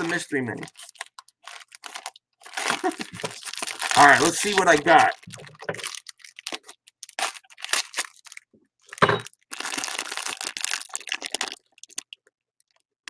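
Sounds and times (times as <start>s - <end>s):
foil wrapper crinkling: 0.0s - 12.8s.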